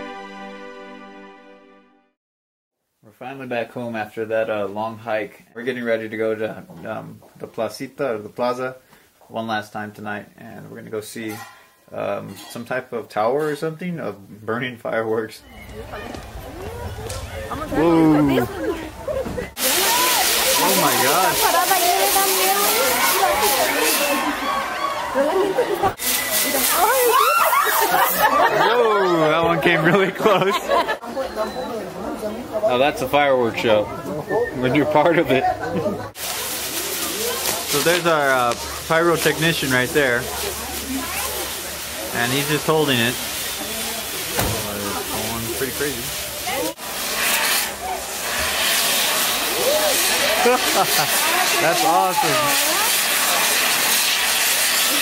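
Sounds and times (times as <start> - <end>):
firework tower hissing: 15.4 - 28.5, 36.1 - 55.0
onlookers' voices: 15.4 - 55.0.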